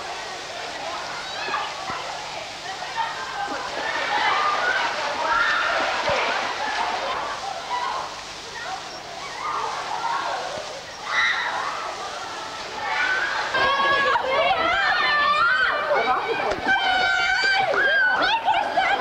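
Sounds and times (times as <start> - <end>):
children's voices and shouts: 0.3 - 19.0.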